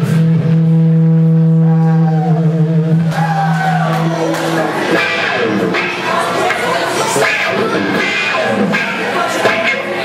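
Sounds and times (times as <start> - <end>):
distorted electric guitar note: 0.0 - 10.0.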